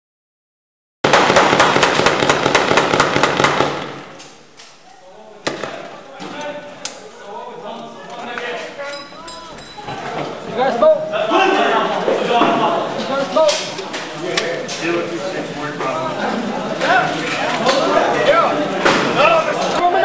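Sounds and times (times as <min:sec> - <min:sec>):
rapid gunfire: 0:01.0 - 0:04.2
single gunshots: 0:01.0 - 0:04.2
men's voices: 0:04.8 - 0:20.0.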